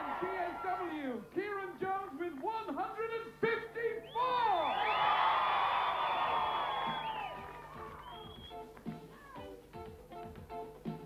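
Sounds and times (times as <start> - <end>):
crowd cheering and whooping: 4.2 - 8.5.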